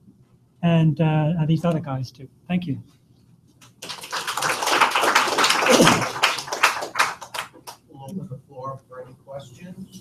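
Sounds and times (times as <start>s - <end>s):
audience applauding: 3.8s - 7.8s.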